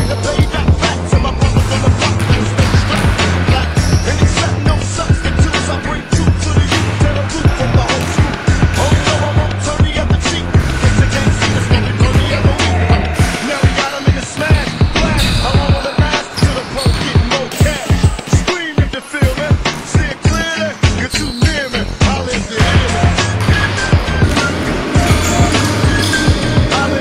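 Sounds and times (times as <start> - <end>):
music with deep bass line: 0.0 - 27.0
basketball bouncing on hardwood floor: 1.4 - 4.8, 22.6 - 26.5.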